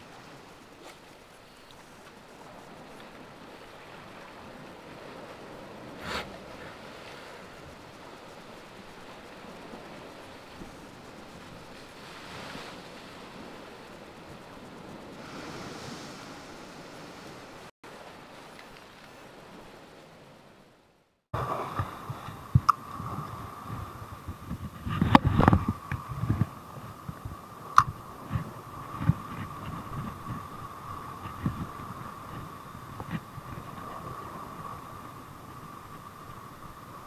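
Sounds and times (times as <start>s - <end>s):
sea surf washing over rock: 2.5s - 18.5s, 21.4s - 37.0s.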